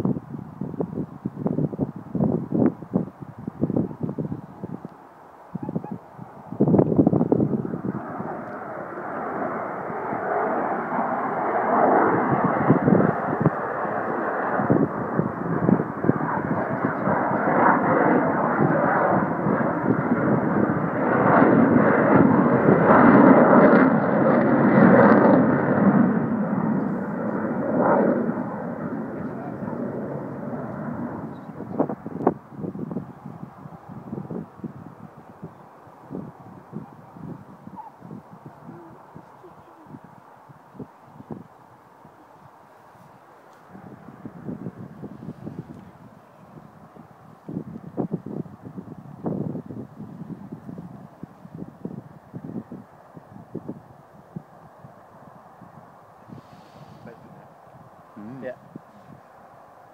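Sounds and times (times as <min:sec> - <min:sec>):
jet aircraft flying past: 0:05.6 - 0:59.9.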